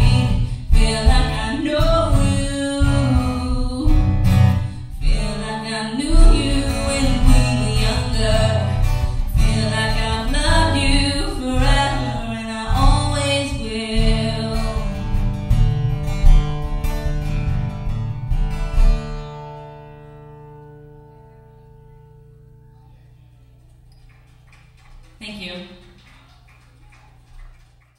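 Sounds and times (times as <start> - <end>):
acoustic guitar: 0.0 - 25.3.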